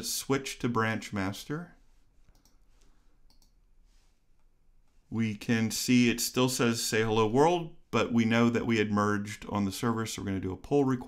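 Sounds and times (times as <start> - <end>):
faint mouse clicks: 2.2 - 3.6.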